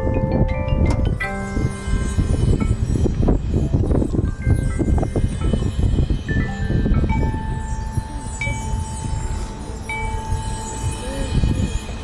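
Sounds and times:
bell-like struck notes: 0.0s - 12.0s.

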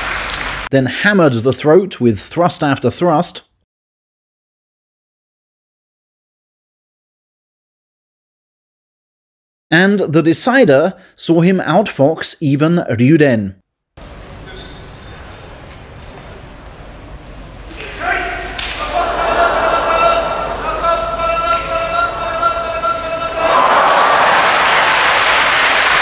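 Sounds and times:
audience applause: 0.0s - 0.7s, 18.8s - 26.0s
referee's long held calls: 17.7s - 26.0s.

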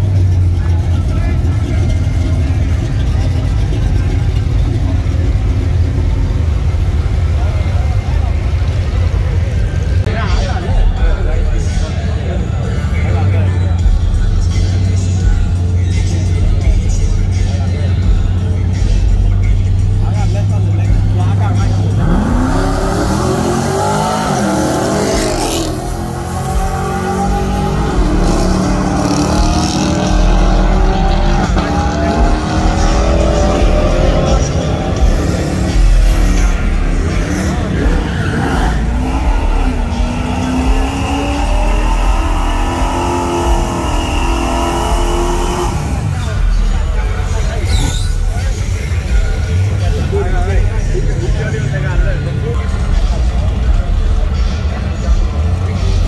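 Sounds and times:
drag cars accelerating: 0.0s - 56.0s
spectators talking: 0.0s - 56.0s.

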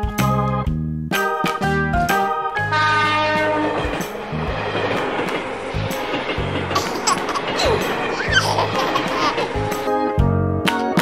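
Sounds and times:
toy train horn blast: 2.6s - 3.8s.

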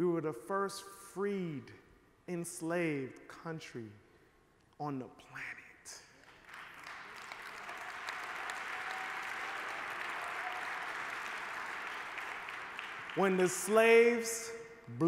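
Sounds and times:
audience applauding: 6.2s - 14.2s.

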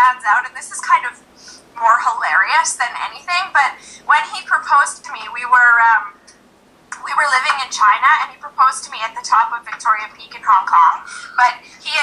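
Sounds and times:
woman talking through speakers: 0.0s - 6.3s, 7.0s - 12.0s.

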